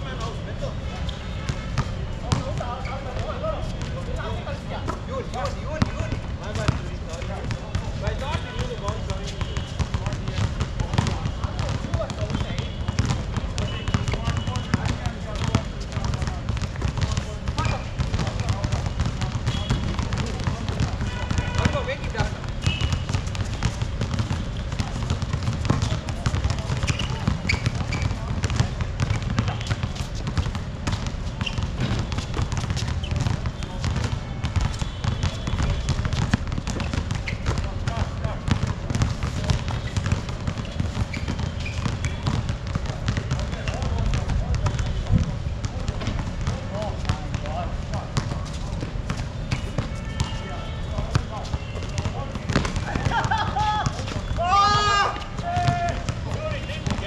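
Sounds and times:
players' footsteps: 0:01.5 - 0:57.0
basketball bouncing: 0:04.9 - 0:57.0
players shouting: 0:52.5 - 0:57.0.

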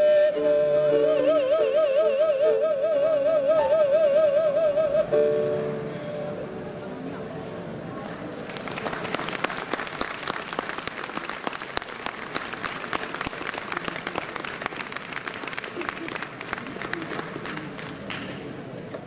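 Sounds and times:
audience applauding: 0:08.4 - 0:18.3.

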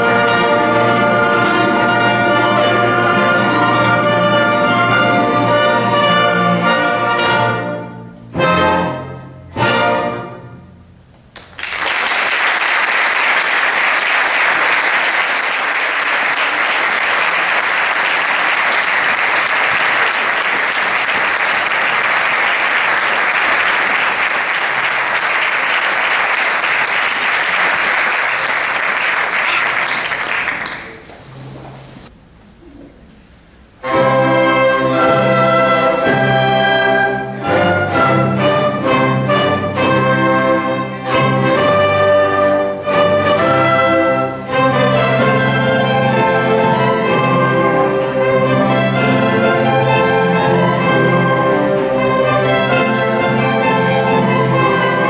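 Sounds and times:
symphony orchestra playing chords: 0:00.0 - 0:11.0, 0:33.6 - 0:55.0
audience applause: 0:11.3 - 0:31.5.

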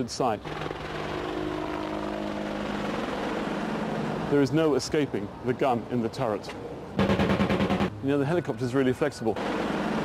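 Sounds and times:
rotor rushing noise: 0:00.4 - 0:04.5
helicopter hovering whine: 0:00.4 - 0:05.0.

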